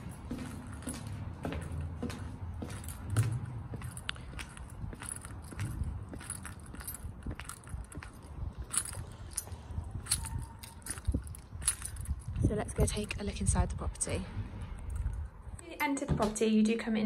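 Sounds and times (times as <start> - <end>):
footsteps on brick paving: 0.0 - 13.7.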